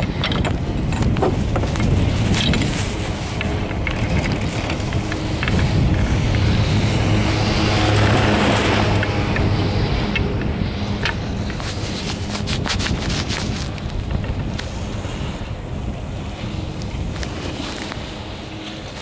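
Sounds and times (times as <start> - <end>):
scattered clicks: 0.0 - 14.8
wind buffeting microphone: 0.0 - 19.0.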